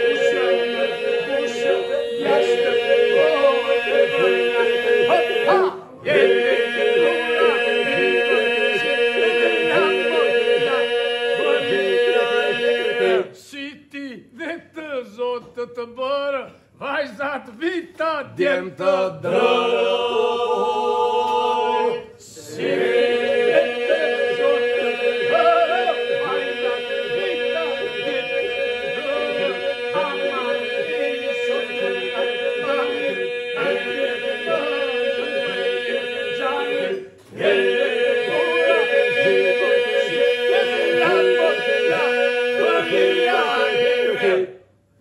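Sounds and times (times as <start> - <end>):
group holding vocal drone: 0.0 - 13.3, 18.8 - 44.6
men singing polyphonic: 0.0 - 13.3, 18.3 - 44.5.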